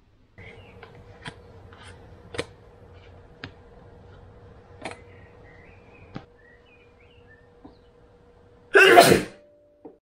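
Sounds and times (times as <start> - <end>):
person sneezing: 8.8 - 9.4.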